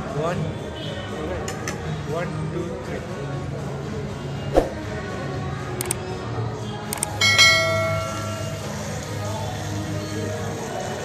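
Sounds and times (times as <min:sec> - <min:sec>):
notification bell ding: 0:07.2 - 0:08.8.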